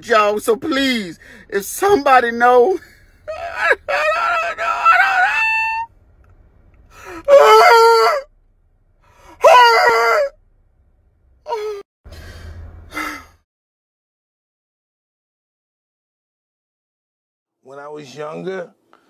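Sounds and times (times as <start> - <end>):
man groaning and wailing: 2.6 - 5.9.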